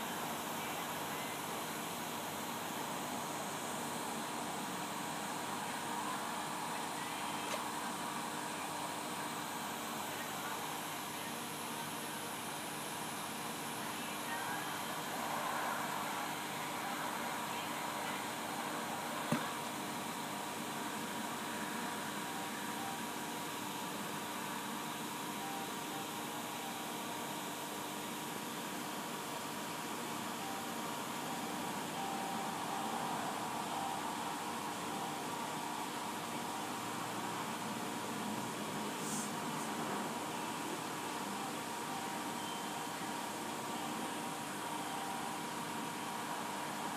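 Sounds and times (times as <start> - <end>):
background hum and hiss: 0.0 - 46.9
faint steady tones: 0.0 - 46.9.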